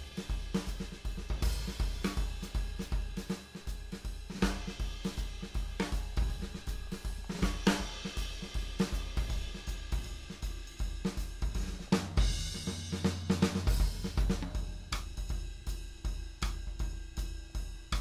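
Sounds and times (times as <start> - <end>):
swing jazz drum pattern: 0.0 - 18.0.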